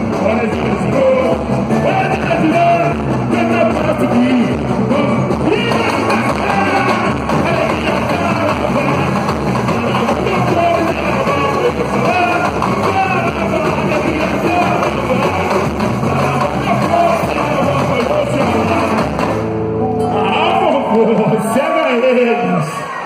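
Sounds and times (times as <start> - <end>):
samba percussion beat: 0.0 - 19.4
singers carrying melody: 5.4 - 20.7.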